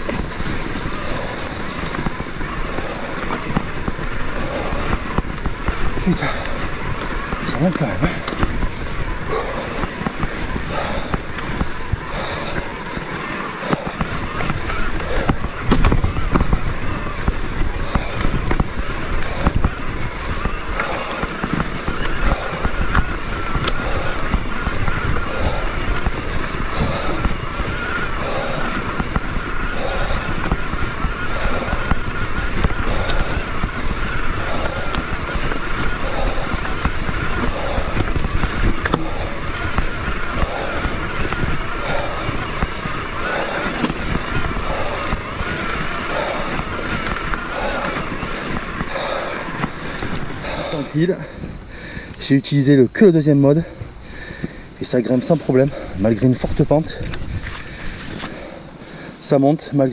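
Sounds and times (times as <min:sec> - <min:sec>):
electric motor whine: 0:00.0 - 0:59.3
bike tyres rumbling over stones: 0:00.0 - 0:59.9.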